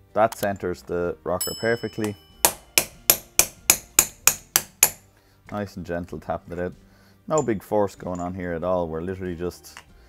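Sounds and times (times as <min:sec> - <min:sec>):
hammer tapping steel driver: 0:01.4 - 0:05.6, 0:07.3 - 0:08.3.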